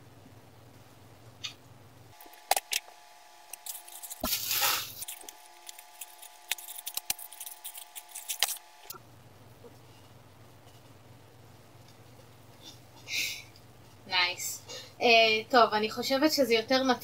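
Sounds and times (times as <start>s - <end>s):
plastic ripping tear: 3.5s - 8.6s
plastic bag crinkling: 3.5s - 8.9s.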